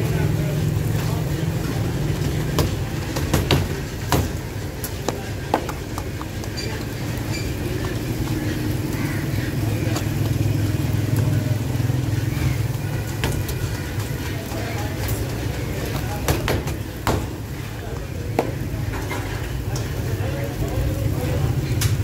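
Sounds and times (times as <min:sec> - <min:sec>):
faint background voices: 0:00.0 - 0:22.0
low engine-like rumble: 0:00.0 - 0:22.0.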